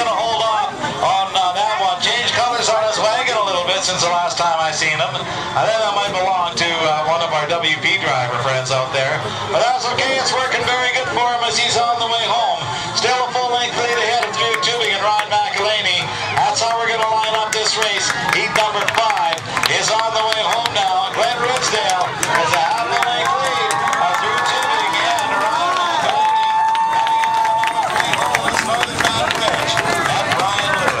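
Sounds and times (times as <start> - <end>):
announcer talking over loudspeakers: 0.0 - 31.0
crowd cheering and shouting: 9.5 - 31.0
scattered clapping: 16.4 - 31.0.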